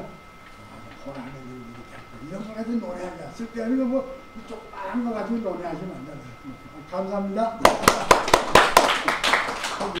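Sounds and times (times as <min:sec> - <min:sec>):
hand clapping: 0:07.6 - 0:10.0.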